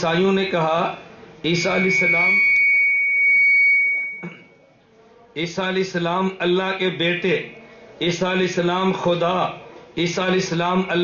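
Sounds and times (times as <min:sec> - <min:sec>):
microphone feedback ring: 0:01.6 - 0:04.6.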